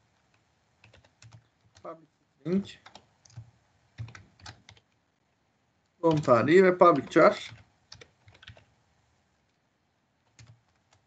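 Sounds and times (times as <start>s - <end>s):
computer keyboard typing: 0.3s - 1.9s, 2.8s - 5.0s, 6.0s - 8.7s, 10.2s - 11.0s.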